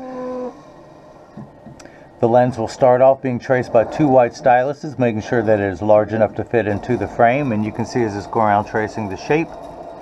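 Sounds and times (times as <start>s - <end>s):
faint machine noise: 0.0s - 10.0s.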